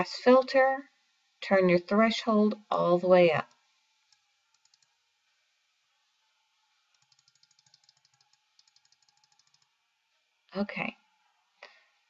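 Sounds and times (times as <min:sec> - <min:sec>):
rapid computer mouse clicks: 0:03.4 - 0:05.0, 0:06.9 - 0:09.7.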